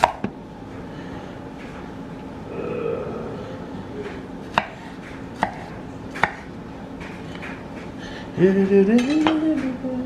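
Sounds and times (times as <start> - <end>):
low steady hum: 0.0 - 10.0
knife chopping on wooden board: 4.5 - 6.5.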